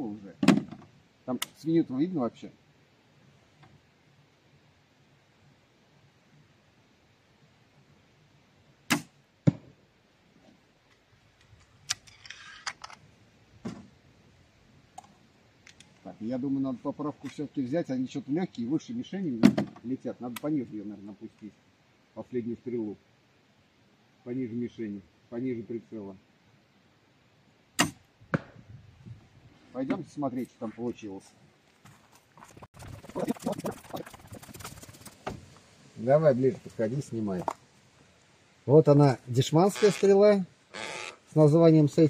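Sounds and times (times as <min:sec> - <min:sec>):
crossbow string snap: 0:08.9 - 0:09.2
bolt striking target: 0:08.9 - 0:09.7, 0:27.8 - 0:28.6.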